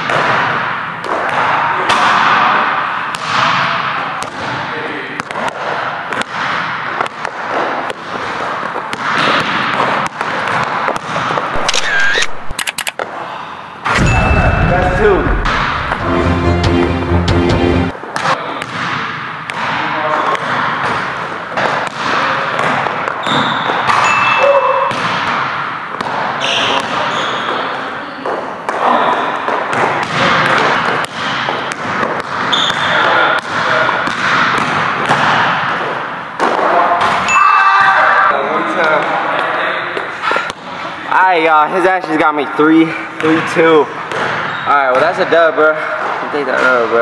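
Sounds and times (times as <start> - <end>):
basketball bouncing on court: 0.0 - 4.6, 5.2 - 11.6, 13.9 - 16.0, 18.2 - 37.3
sneaker squeaks: 23.1 - 25.0, 26.4 - 31.4, 32.4 - 33.4, 44.2 - 45.0.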